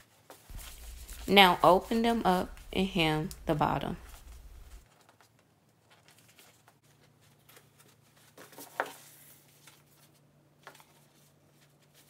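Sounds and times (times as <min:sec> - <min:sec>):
faint low hum: 0:00.5 - 0:04.8
plastic sleeve crinkling: 0:00.5 - 0:05.2.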